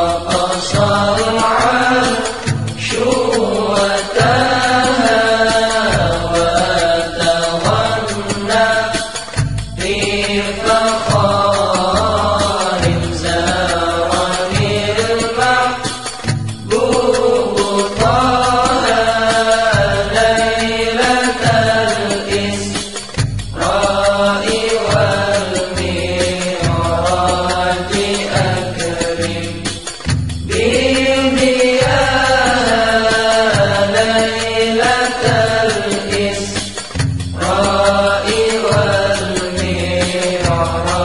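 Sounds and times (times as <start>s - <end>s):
chanted devotional singing: 0.0s - 41.0s
instrumental accompaniment with beat: 0.0s - 41.0s.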